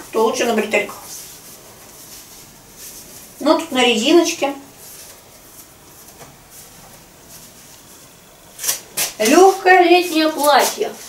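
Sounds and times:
dress fabric rustling: 0.0s - 11.0s
short hiss: 8.5s - 9.2s.

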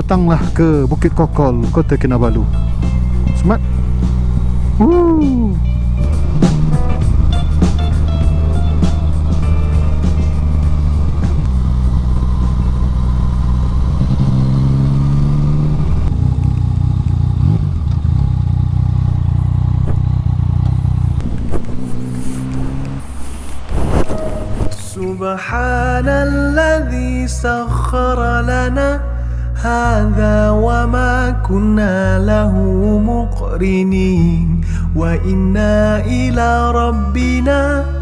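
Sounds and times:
motorcycle engine running: 0.0s - 25.0s.

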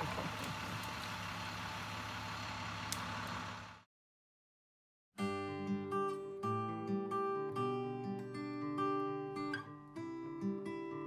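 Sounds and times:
truck engine humming: 0.0s - 3.8s.

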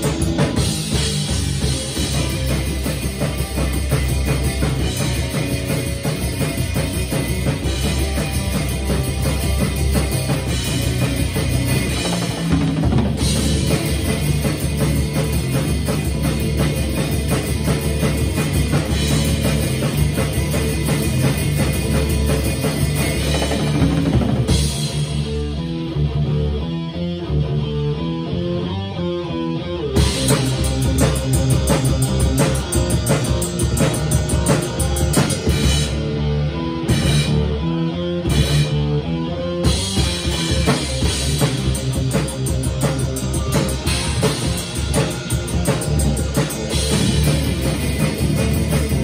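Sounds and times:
rock drumming with rods: 0.0s - 26.2s, 30.0s - 49.0s.

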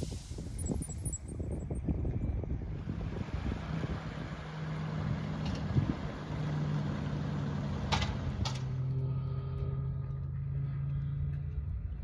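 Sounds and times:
wind buffeting microphone: 0.0s - 6.2s.

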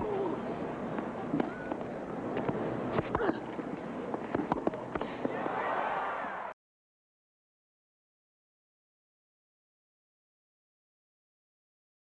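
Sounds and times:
murmur of stadium crowd: 0.0s - 6.6s.

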